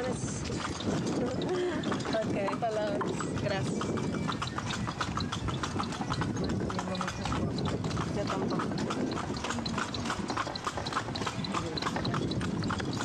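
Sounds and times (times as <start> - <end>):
horse hooves clip-clopping: 0.0 - 13.0.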